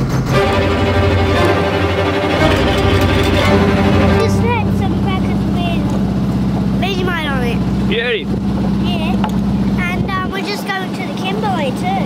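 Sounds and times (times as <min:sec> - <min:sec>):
diesel boat engine droning: 0:00.0 - 0:12.0
child's voice: 0:04.2 - 0:06.0, 0:06.8 - 0:07.6, 0:08.8 - 0:09.2, 0:09.8 - 0:12.0.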